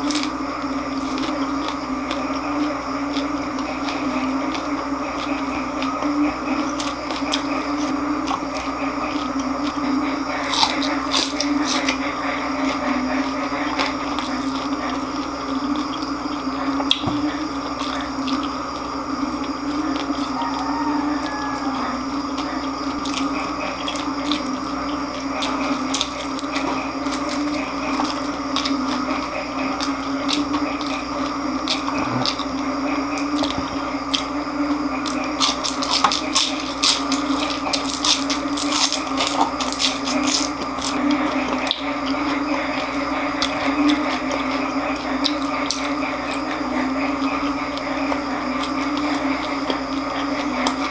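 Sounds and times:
crunchy food being chewed: 0:00.0 - 0:50.9
steady low hum: 0:00.0 - 0:50.9.

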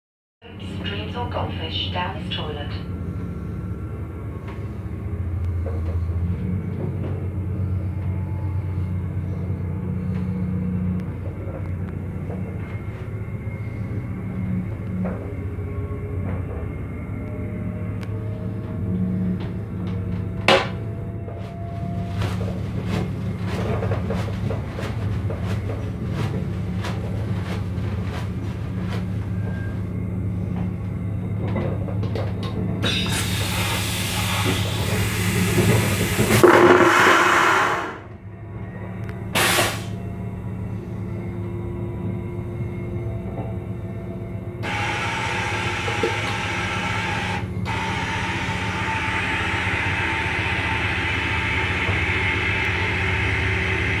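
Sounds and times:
low hum of moving train: 0:00.4 - 0:54.0
vacuum toilet flushing: 0:32.8 - 0:38.1, 0:39.4 - 0:40.0, 0:44.6 - 0:54.0
brief hiss: 0:39.4 - 0:40.0.

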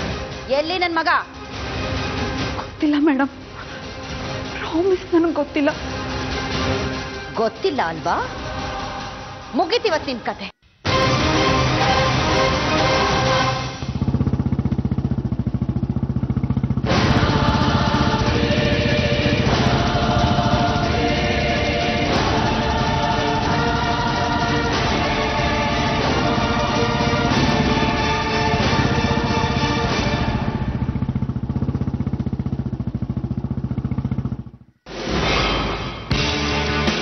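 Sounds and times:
dramatic background music: 0:00.0 - 0:13.9, 0:16.8 - 0:31.4
low throbbing drone: 0:10.8 - 0:37.0
motorcycle engine idling: 0:13.7 - 0:34.9.

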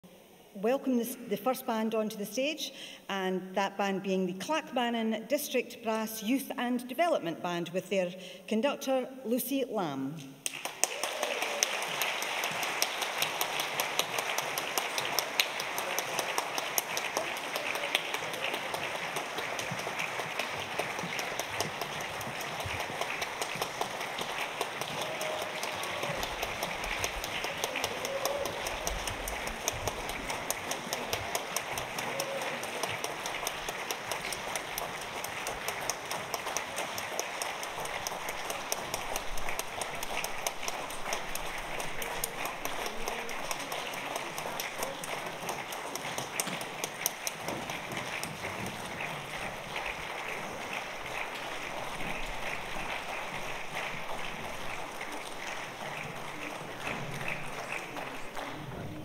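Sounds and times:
audience applauding: 0:10.4 - 0:59.0.

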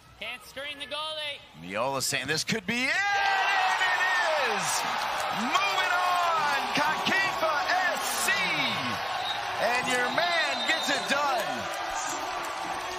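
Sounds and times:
background crowd: 0:00.0 - 0:12.9
people shouting and whooping: 0:03.0 - 0:12.9.

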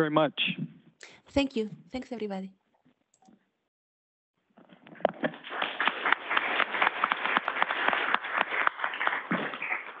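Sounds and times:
audience clapping: 0:05.0 - 0:10.0.

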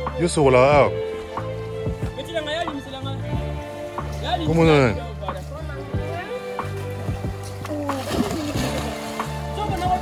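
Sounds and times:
background music: 0:00.0 - 0:10.0
child splashing into water: 0:07.5 - 0:09.8.

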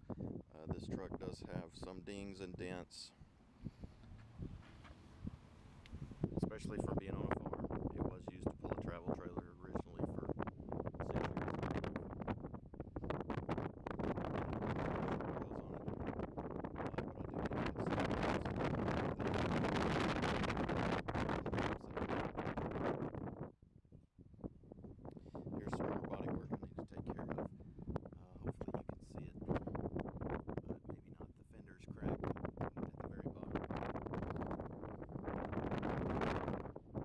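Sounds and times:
wind buffeting microphone: 0:00.0 - 0:37.0.

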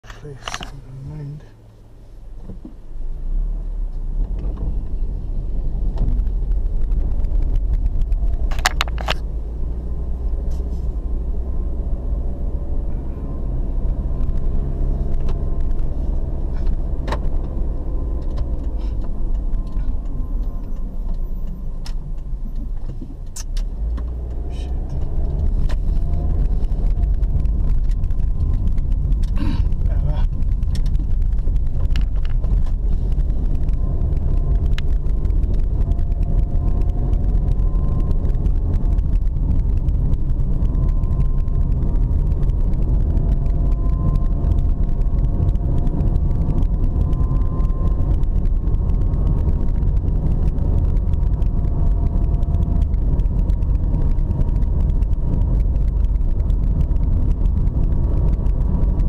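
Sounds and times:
car engine and road rumble: 0:00.0 - 0:59.0
sharp clicks: 0:16.7 - 0:59.0.

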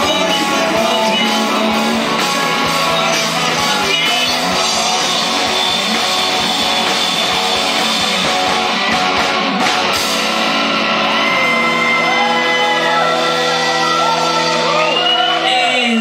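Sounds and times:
person singing: 0:00.0 - 0:06.1
live rock band playing: 0:00.0 - 0:16.0.

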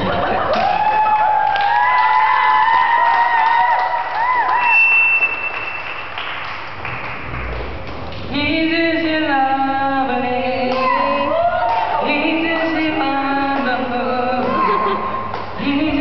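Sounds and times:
audience clapping and cheering: 0:00.3 - 0:08.3, 0:10.7 - 0:12.1.

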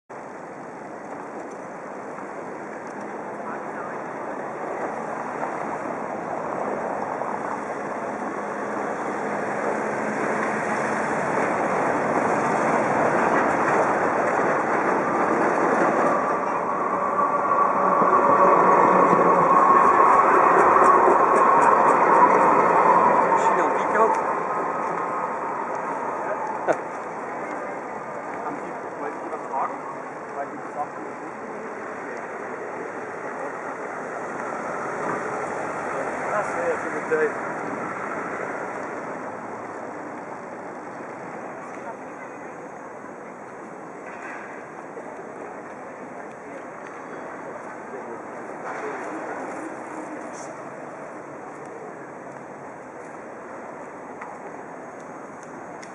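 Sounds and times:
traffic noise: 0:00.1 - 0:55.9
vehicle passing: 0:08.0 - 0:28.8
crowd chatter: 0:09.7 - 0:39.2, 0:41.1 - 0:55.7.

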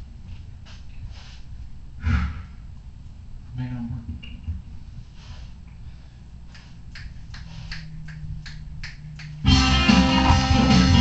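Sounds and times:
faint low hum: 0:00.0 - 0:10.5.

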